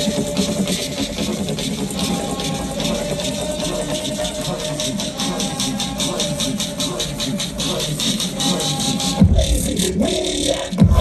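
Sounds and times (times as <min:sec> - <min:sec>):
electronic dance music: 0:00.0 - 0:11.0.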